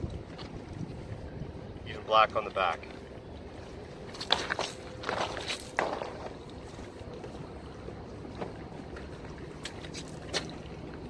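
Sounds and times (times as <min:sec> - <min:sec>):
wind blowing across microphone: 0:00.0 - 0:02.0.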